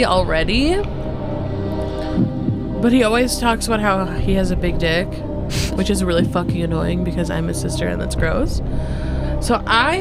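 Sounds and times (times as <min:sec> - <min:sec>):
sustained low tones: 0:00.0 - 0:09.7
steady low hum: 0:00.0 - 0:10.0.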